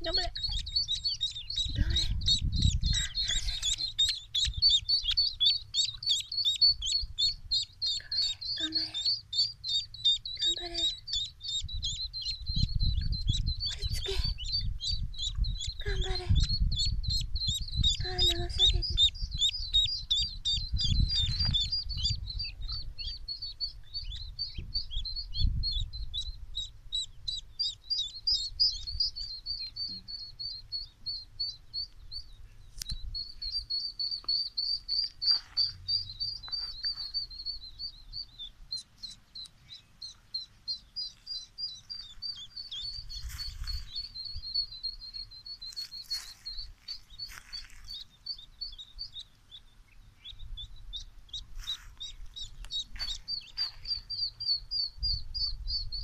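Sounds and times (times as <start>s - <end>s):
duckling peeping: 0.0s - 56.0s.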